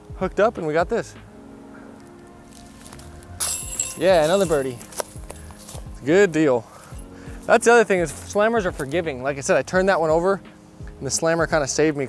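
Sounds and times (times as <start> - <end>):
background music: 0.0 - 12.0
disc hitting rattling chains: 3.4 - 6.1.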